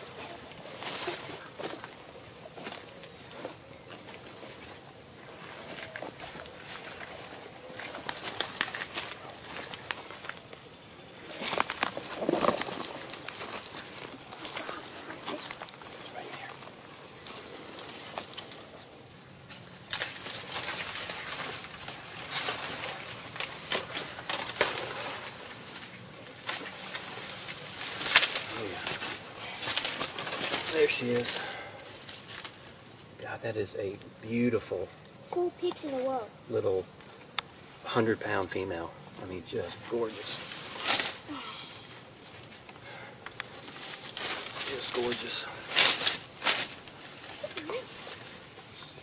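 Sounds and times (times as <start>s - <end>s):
bodies pushing through dry fronds: 0.0s - 32.8s, 43.5s - 49.0s
footsteps crunching dry leaves: 0.6s - 10.5s, 11.2s - 18.8s, 19.5s - 32.6s, 43.5s - 48.6s.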